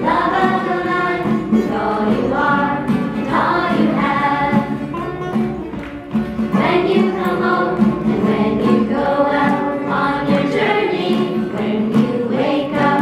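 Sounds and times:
choir singing: 0.0s - 4.9s, 6.5s - 13.0s.

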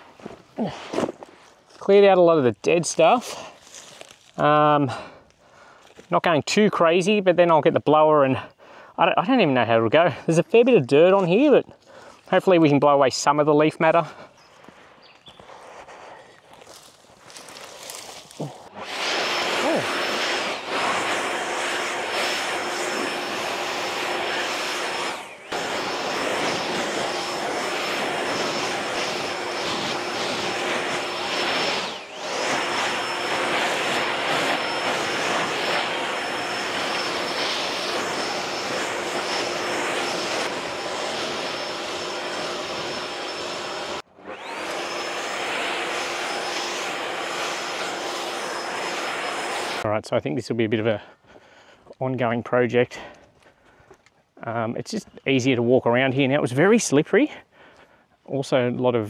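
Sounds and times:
leaf blower running: 15.7s - 49.9s.

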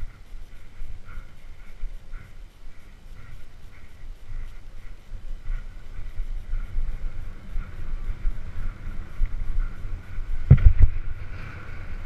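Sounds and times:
low rumble of bike riding: 0.0s - 12.0s
wind buffeting microphone: 0.0s - 12.0s
bike bump thuds: 10.4s - 10.9s.

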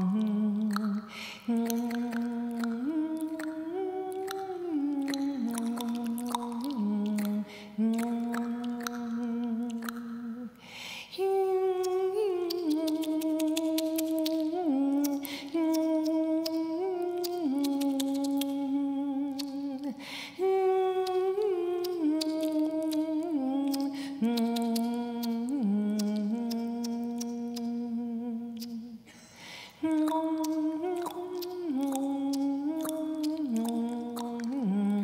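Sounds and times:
tongue clicks: 0.0s - 10.6s, 11.6s - 29.1s, 29.8s - 35.0s.

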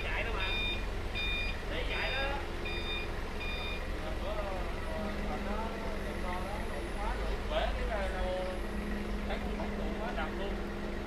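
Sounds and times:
forklift reversing alarm beeping: 0.0s - 4.0s
forklift engine running: 0.0s - 11.0s.

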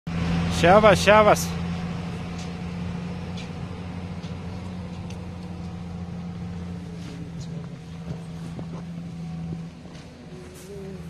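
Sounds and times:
truck engine droning: 0.1s - 11.0s.

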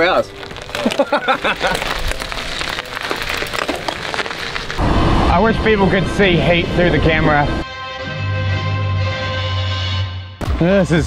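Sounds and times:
bike tyres rolling over gravel: 0.0s - 7.5s
music: 7.6s - 11.0s.

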